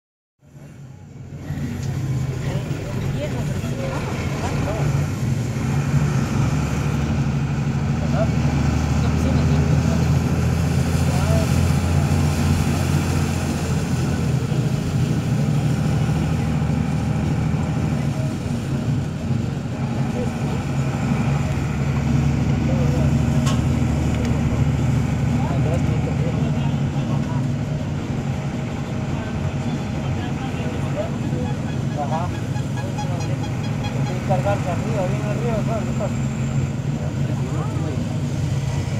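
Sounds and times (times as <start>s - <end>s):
vehicle engine running: 0.6s - 38.9s.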